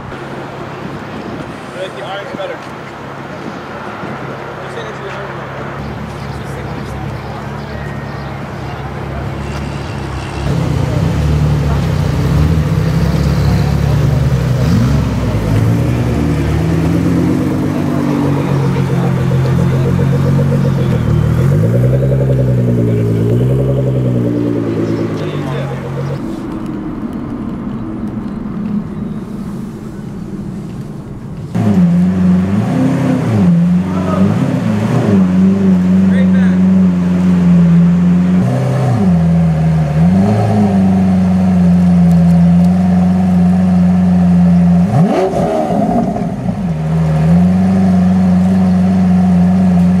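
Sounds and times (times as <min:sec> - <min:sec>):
car engine revving loudly: 0:10.4 - 0:26.5, 0:31.4 - 0:50.0
sports car engine revving: 0:10.4 - 0:50.0.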